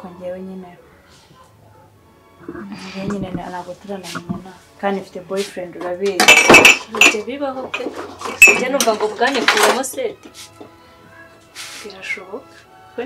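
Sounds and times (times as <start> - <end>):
dishes and cutlery clinking: 5.8 - 9.9.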